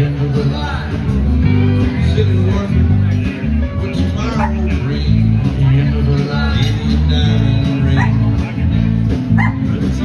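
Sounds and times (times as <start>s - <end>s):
live band playing: 0.0s - 10.0s
pulsing bass line: 0.0s - 10.0s.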